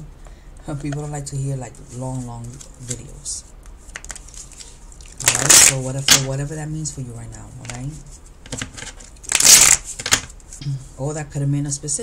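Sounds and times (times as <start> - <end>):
cards shuffling: 1.8 - 6.3, 7.6 - 10.6.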